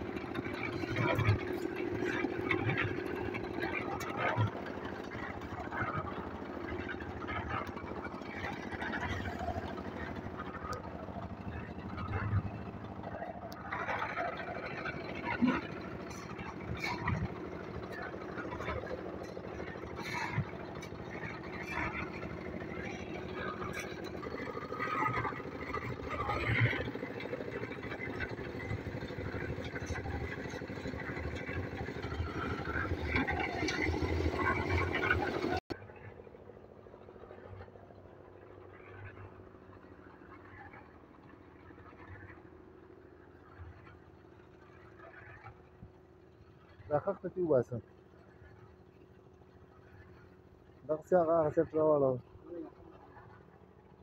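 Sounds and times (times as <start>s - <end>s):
concrete mixer engine humming: 0.0s - 54.0s.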